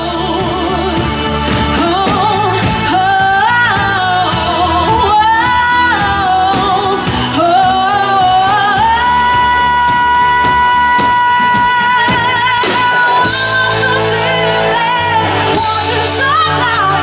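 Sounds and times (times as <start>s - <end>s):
lead melody of sliding notes: 0.0s - 17.0s
live band playing: 0.0s - 17.0s.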